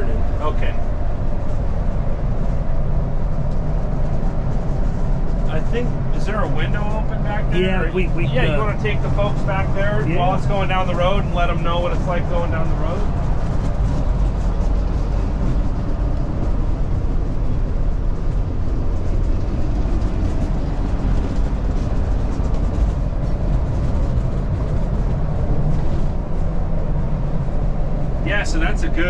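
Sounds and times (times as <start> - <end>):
diesel engine low rumble: 0.0 - 29.0
tyres on road: 0.0 - 29.0.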